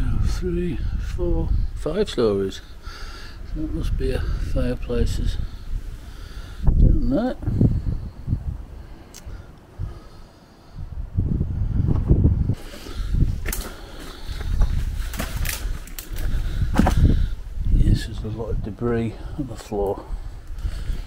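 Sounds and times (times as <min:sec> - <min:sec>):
microphone rumble: 0:10.8 - 0:18.8
clicks and snaps underfoot: 0:12.7 - 0:17.1
footsteps on loose stone rubble: 0:13.4 - 0:17.1.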